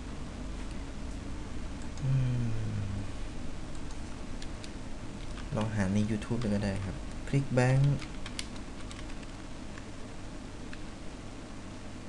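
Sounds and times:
person speaking: 2.0 - 3.1, 5.5 - 8.1
keyboard typing: 7.7 - 9.9.

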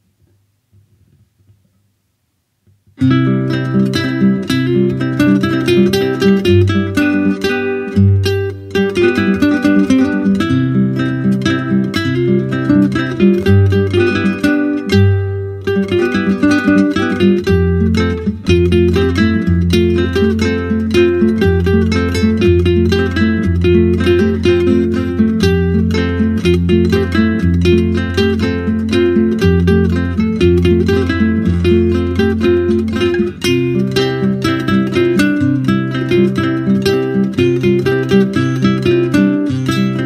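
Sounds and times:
plucked guitar notes: 3.0 - 40.0.

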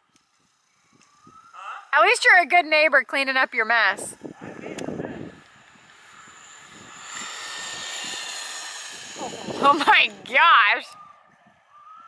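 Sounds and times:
rc truck motor whine: 0.0 - 1.6, 3.6 - 12.0.

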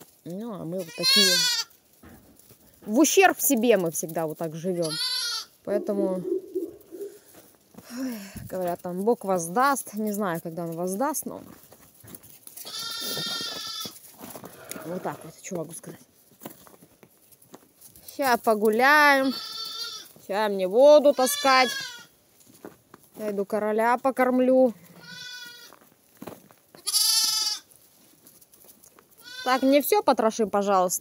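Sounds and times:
young goat bleating: 0.8 - 1.7, 4.7 - 7.2, 12.6 - 15.3, 19.0 - 20.2, 21.0 - 22.1, 24.8 - 25.8, 26.8 - 27.7, 29.2 - 29.8.

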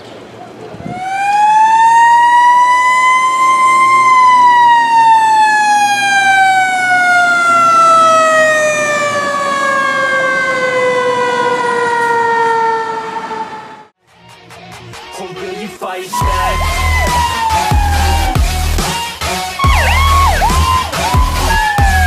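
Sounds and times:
fire truck siren: 0.9 - 14.0, 16.2 - 22.0.

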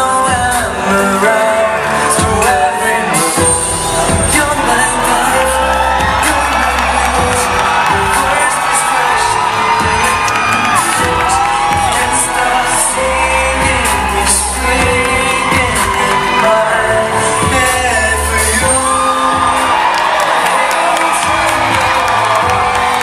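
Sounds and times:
backing music with drum beat: 0.0 - 23.0
men singing into microphones: 0.0 - 23.0.

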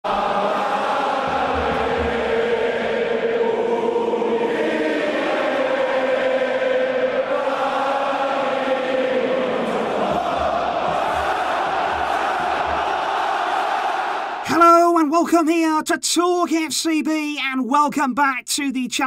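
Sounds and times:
voices chanting in unison: 0.0 - 14.5
low thuds: 9.7 - 14.4.

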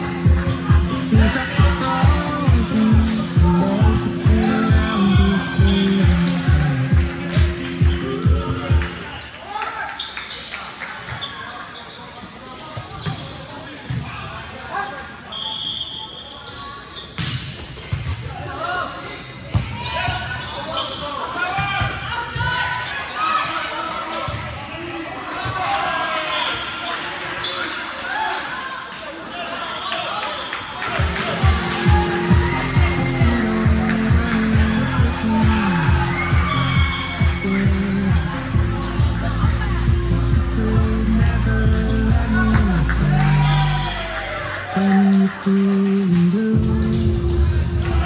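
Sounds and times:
music with steady beat: 0.0 - 9.0, 31.0 - 43.8
voices in gym: 0.0 - 48.0.

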